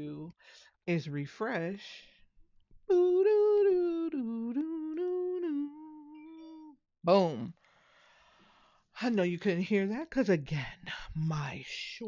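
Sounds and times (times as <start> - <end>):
woman humming a wordless tune: 2.9 - 6.8.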